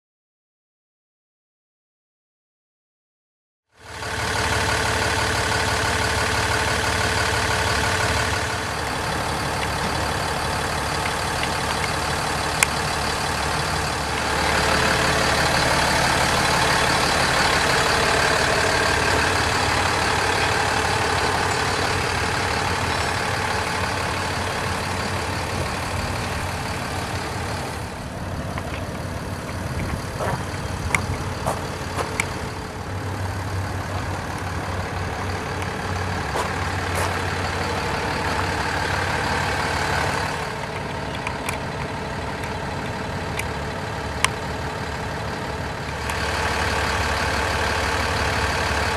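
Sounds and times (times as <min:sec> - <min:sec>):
diesel truck idling: 0:03.8 - 0:48.9.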